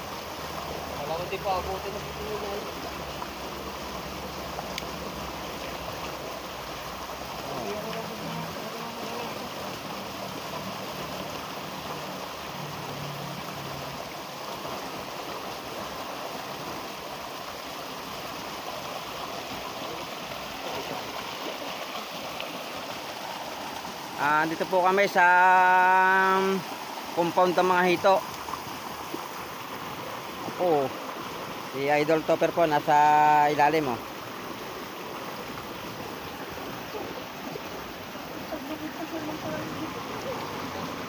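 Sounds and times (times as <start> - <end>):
river rushing over rocks: 0.0 - 41.0.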